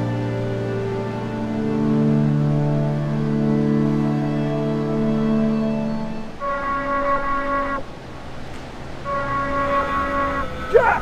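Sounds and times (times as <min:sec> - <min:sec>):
ambient film score music: 0:00.0 - 0:11.0.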